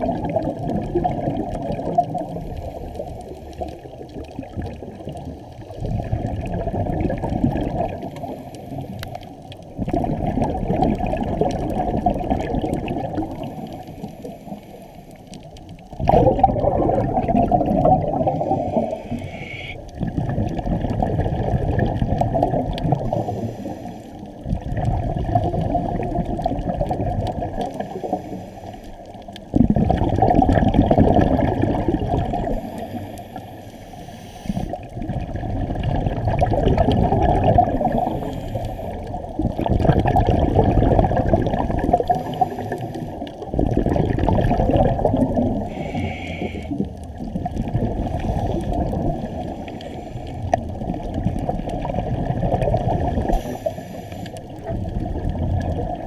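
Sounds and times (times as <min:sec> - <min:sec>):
exhaled bubbles underwater: 0:00.0 - 0:56.0
diver breathing through regulator: 0:18.1 - 0:19.9, 0:23.0 - 0:24.4, 0:27.8 - 0:29.1, 0:32.4 - 0:34.8, 0:37.7 - 0:39.2, 0:42.1 - 0:43.4, 0:45.5 - 0:47.1, 0:48.0 - 0:50.7, 0:53.2 - 0:54.6.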